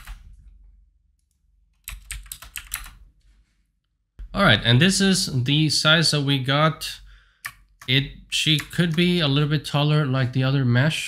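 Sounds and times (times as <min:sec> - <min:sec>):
computer keyboard typing: 0:00.0 - 0:00.4, 0:01.8 - 0:03.0, 0:07.4 - 0:09.2.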